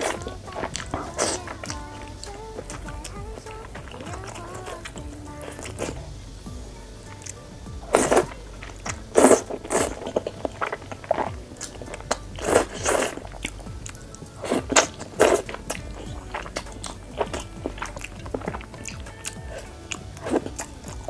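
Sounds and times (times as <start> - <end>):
slurping noodles: 0.0 - 2.8, 7.2 - 21.0
wet chewing: 0.0 - 21.0.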